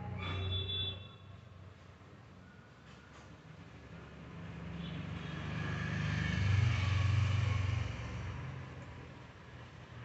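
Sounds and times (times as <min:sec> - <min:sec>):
vehicle passing by: 0:04.0 - 0:10.0.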